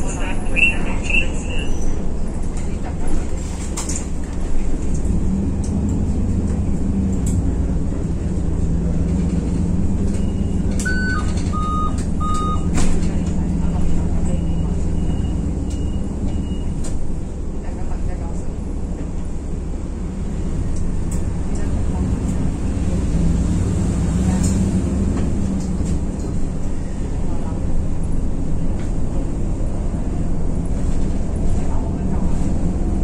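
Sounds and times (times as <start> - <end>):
bus running on road: 0.0 - 33.0
electronic beeps: 10.2 - 12.7.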